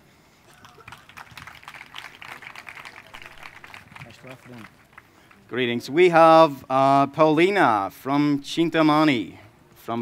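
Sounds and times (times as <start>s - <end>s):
audience applauding: 0.5s - 5.5s.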